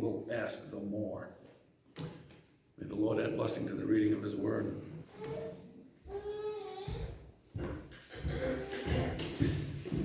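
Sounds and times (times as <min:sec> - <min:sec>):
small child vocalizing: 0:05.1 - 0:07.2.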